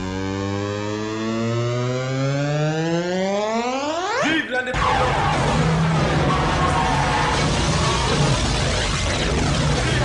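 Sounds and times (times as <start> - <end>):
buzzing tone rising in pitch: 0.0 - 4.2.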